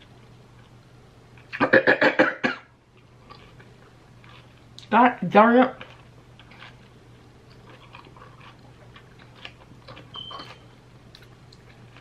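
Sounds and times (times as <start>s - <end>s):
woman coughing muffled: 1.6s - 2.7s.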